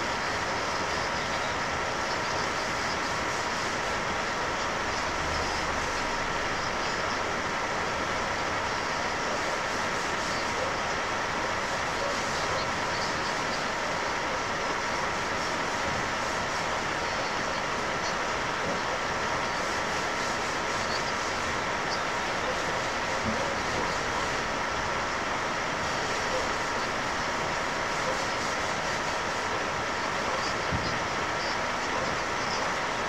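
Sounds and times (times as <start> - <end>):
steady hiss: 0.0 - 33.0.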